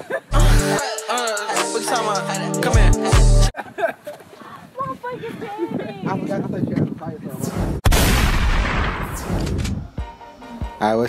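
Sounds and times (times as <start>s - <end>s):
laughter: 0.0s - 0.4s, 3.5s - 4.4s
loud boom blast: 7.8s - 9.8s.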